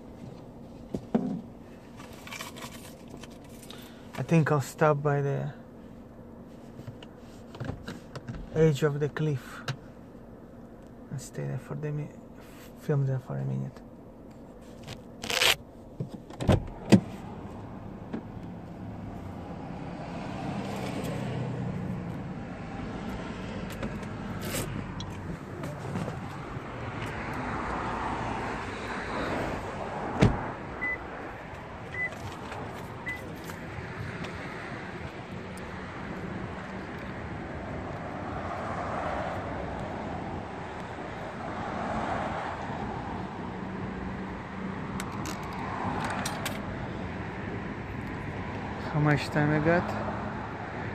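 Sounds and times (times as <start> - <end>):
car door opening and shutting: 6.9 - 8.5, 14.7 - 17.3, 23.4 - 27.6, 30.0 - 35.2, 44.9 - 46.7
cars passing: 16.3 - 50.9.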